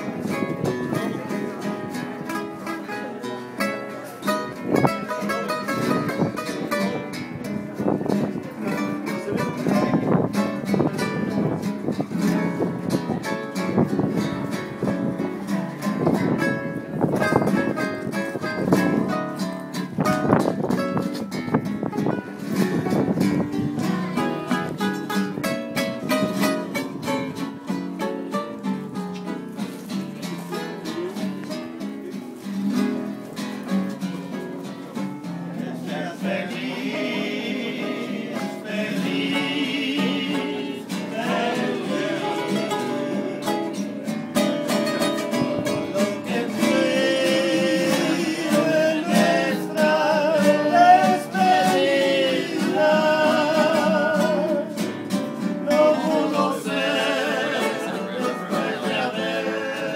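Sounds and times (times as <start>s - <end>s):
acoustic guitars playing: 0.0s - 59.9s.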